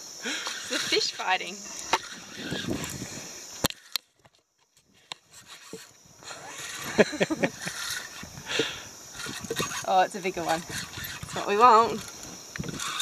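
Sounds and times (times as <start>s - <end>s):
woman laughing: 6.8s - 7.8s.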